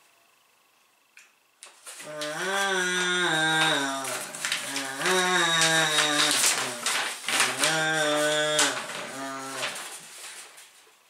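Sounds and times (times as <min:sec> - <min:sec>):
paper rustling: 0:01.6 - 0:11.0
man singing wordless notes: 0:02.0 - 0:09.8.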